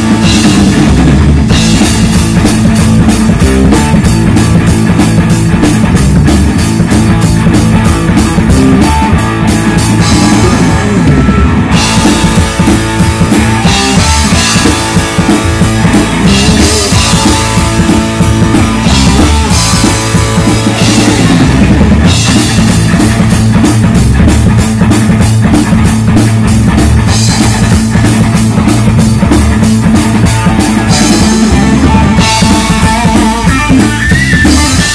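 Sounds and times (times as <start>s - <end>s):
bass guitar: 0.0s - 34.9s
drum kit: 0.0s - 34.9s
electric guitar: 0.0s - 34.9s.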